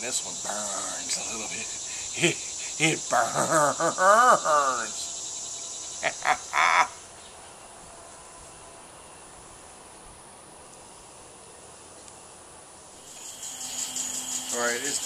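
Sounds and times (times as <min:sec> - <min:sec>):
faint insects chirping: 0:00.0 - 0:15.0
man exclaiming: 0:00.5 - 0:05.0, 0:06.1 - 0:07.0.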